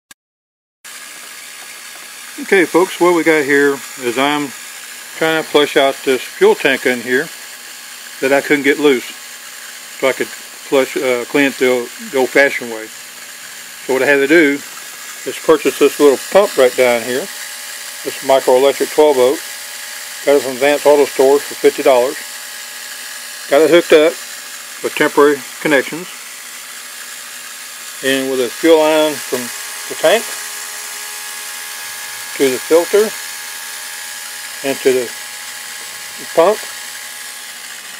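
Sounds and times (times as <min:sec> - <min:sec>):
electric fuel pump hissing: 0:00.9 - 0:37.9.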